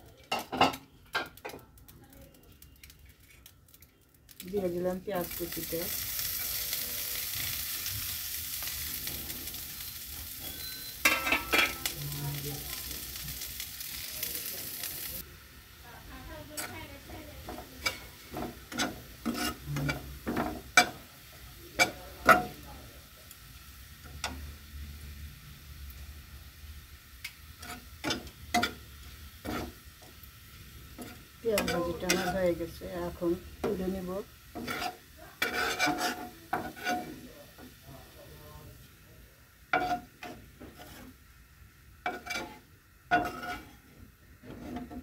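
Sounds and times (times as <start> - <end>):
onions sizzling in oil: 0.0 - 45.0
spatula scraping a pan: 5.3 - 13.4, 16.5 - 21.1, 27.6 - 30.2, 30.8 - 37.7, 39.7 - 41.3, 42.0 - 45.0.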